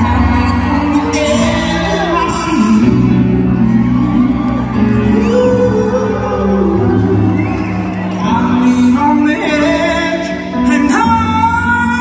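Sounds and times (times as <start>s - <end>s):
live band music through pa: 0.0s - 12.0s.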